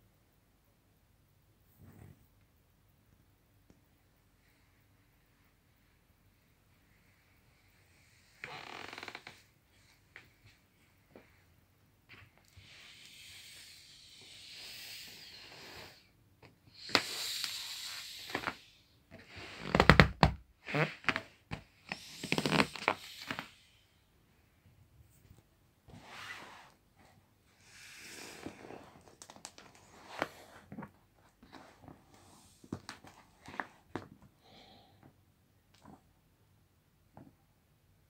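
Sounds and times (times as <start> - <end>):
air hissing from air mattress: 12.6 - 16.1, 16.7 - 19.6, 21.9 - 23.8.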